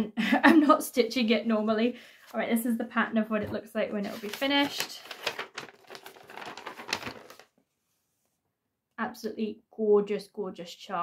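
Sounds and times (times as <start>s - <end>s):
paper sheet rustling: 3.9s - 7.6s.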